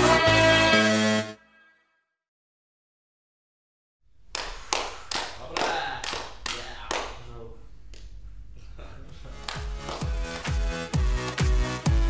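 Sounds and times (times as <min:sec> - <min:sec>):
slow hand clapping with echo: 0:04.3 - 0:07.3, 0:09.4 - 0:11.8.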